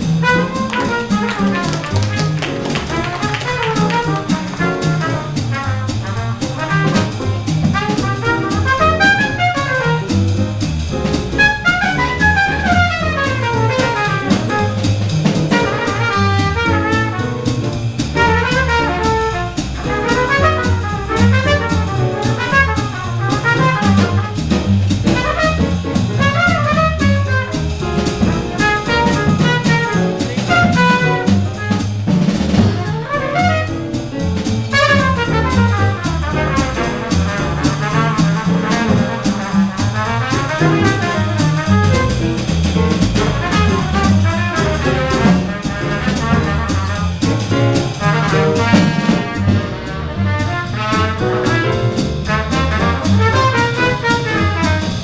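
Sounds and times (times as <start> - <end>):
trumpet fast runs: 0.0 - 10.4, 11.3 - 17.6, 18.2 - 55.0
drum kit: 0.0 - 55.0
jazz band playing: 0.0 - 55.0
walking upright bass: 0.0 - 55.0.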